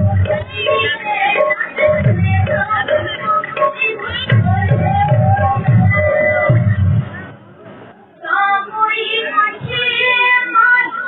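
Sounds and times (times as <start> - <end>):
woman singing devotional melody: 0.0 - 6.8, 8.2 - 11.0.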